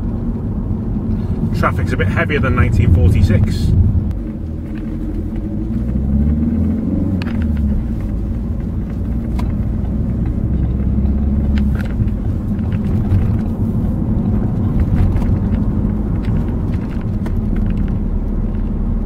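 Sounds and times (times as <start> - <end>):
car engine: 0.0 - 19.0
road rumble: 0.0 - 19.0.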